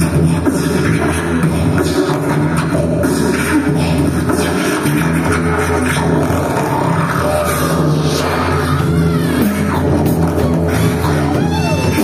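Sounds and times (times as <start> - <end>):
drums: 0.0 - 12.0
electric bass: 0.0 - 12.0
rock band playing: 8.0 - 12.0.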